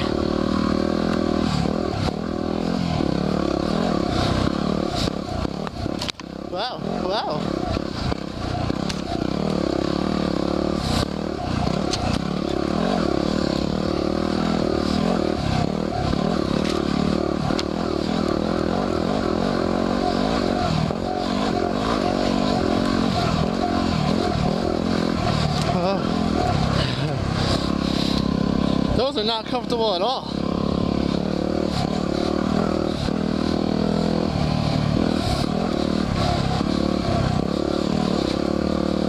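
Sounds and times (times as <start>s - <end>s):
motorcycle engine revving: 0.0s - 39.0s.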